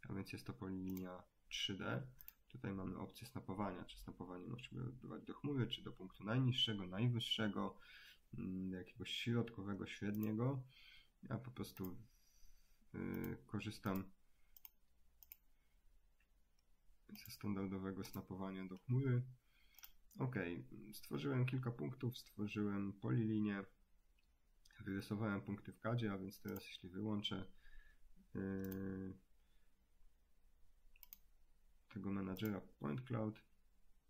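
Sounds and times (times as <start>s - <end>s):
faint computer mouse clicks: 0.8s - 1.1s, 2.2s - 2.6s, 10.1s - 10.4s, 11.7s - 12.0s, 13.1s - 15.5s, 19.7s - 20.2s, 28.5s - 28.8s, 31.0s - 31.3s.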